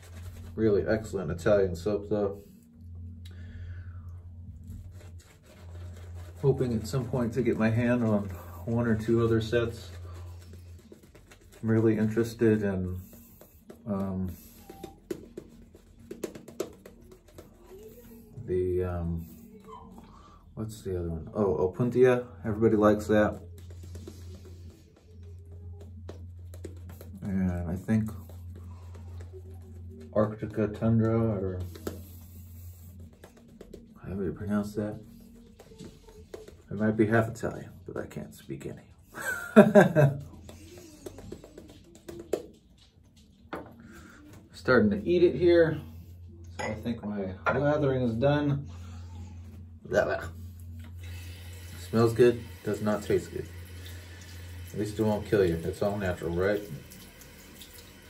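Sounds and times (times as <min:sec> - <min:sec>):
shaving brush lathering soap: 0:00.0 - 0:01.1, 0:04.6 - 0:18.4, 0:22.5 - 0:37.2, 0:50.6 - 0:58.0.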